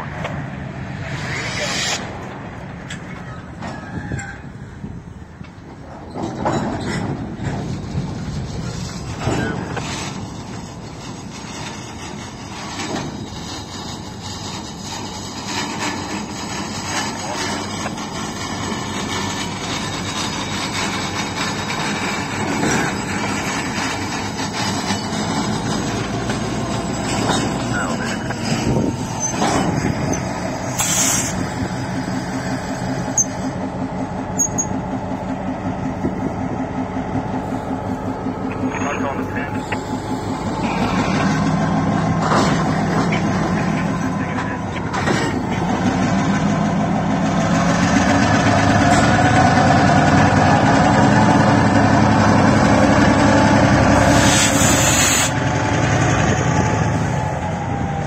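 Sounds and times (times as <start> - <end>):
locomotive diesel engine running: 0.0 - 58.0.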